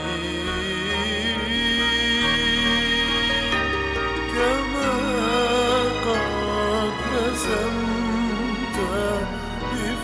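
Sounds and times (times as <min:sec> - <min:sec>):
instrumental accompaniment: 0:00.0 - 0:10.0
man singing a hymn: 0:00.0 - 0:10.0.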